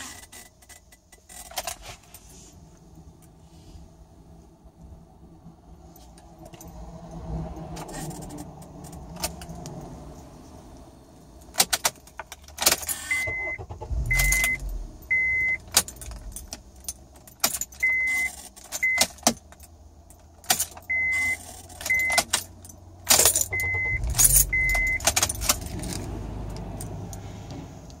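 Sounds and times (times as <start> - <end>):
buzzing and clicking from ignition: 11.4 - 28.0
short high beeps: 13.1 - 15.6, 23.5 - 25.0
keys jangling: 15.6 - 20.8, 21.4 - 27.2.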